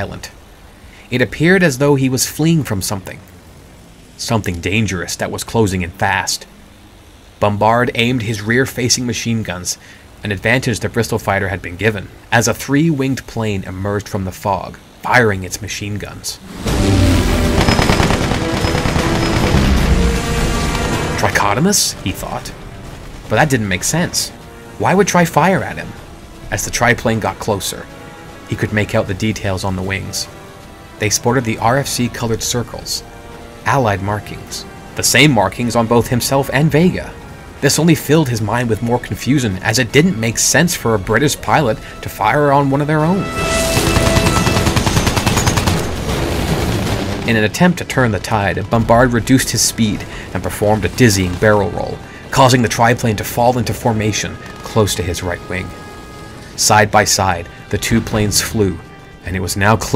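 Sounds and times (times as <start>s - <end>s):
background music with low notes: 0.0s - 59.9s
machine-gun fire: 16.5s - 21.3s, 43.4s - 47.4s.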